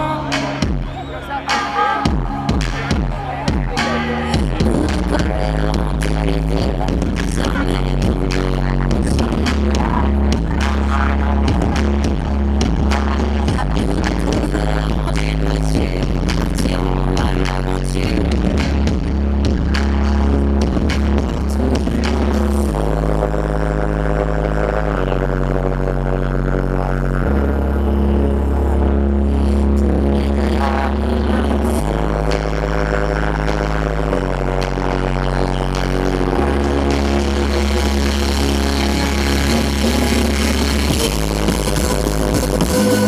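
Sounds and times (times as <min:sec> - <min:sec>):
woman singing into microphone: 0:00.0 - 0:00.7, 0:03.8 - 0:20.6, 0:27.3 - 0:43.0
live pop band: 0:00.0 - 0:22.9
held bass notes: 0:00.0 - 0:43.0.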